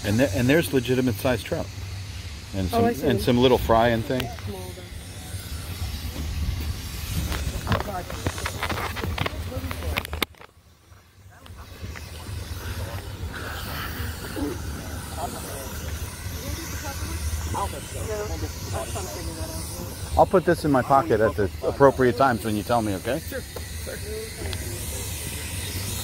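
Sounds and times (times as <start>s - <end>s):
steady hiss: 0.0s - 26.0s
faint voices: 2.4s - 26.0s
wind rumble on microphone: 5.8s - 10.3s.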